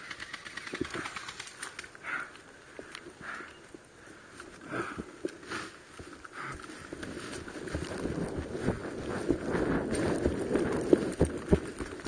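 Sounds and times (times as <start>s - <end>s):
soft rustling: 3.7s - 12.0s.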